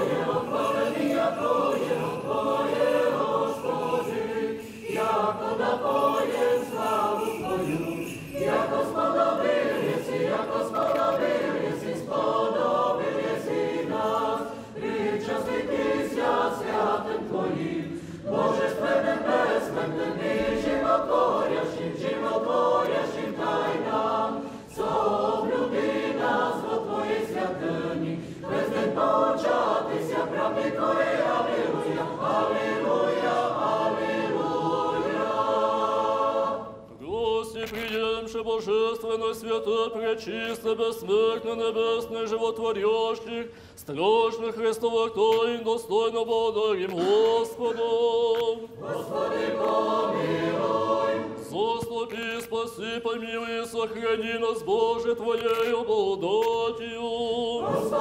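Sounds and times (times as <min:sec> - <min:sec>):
choir singing unaccompanied: 0:00.0 - 0:43.4, 0:44.1 - 0:58.0.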